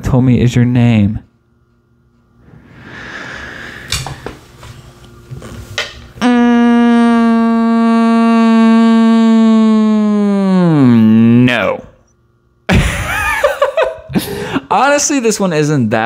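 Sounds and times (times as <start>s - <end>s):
loud steady held note: 6.2s - 11.8s.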